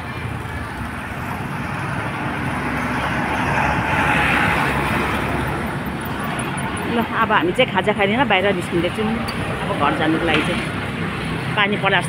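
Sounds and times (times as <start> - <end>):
road traffic passing: 0.0 - 12.0.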